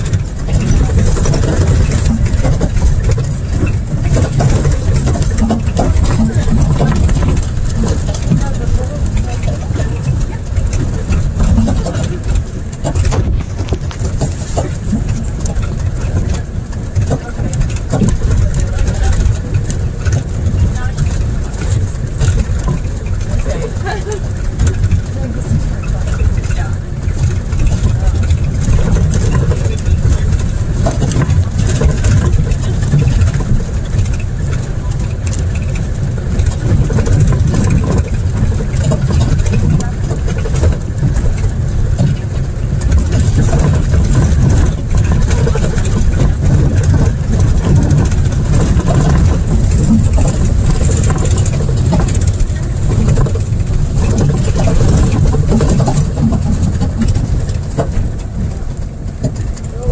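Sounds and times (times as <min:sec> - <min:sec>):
vehicle engine and road rumble: 0:00.0 - 0:59.9.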